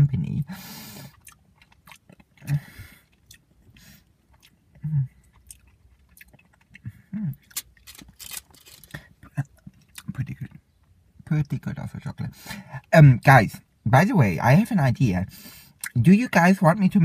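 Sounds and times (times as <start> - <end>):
person chewing: 0.9 - 10.4.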